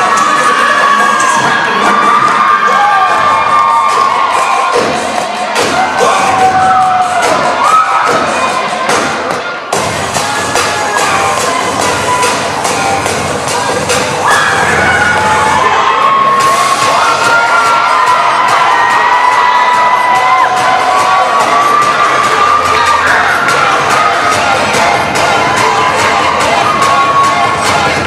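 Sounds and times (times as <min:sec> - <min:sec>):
crowd screaming and cheering: 0:00.0 - 0:28.0
dance music with steady beat: 0:00.0 - 0:28.0.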